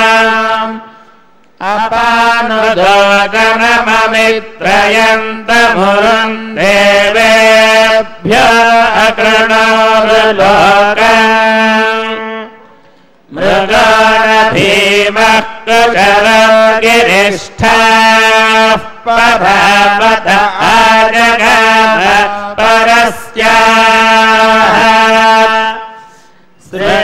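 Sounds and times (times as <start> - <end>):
men chanting together: 13.3 - 25.8, 26.6 - 27.0.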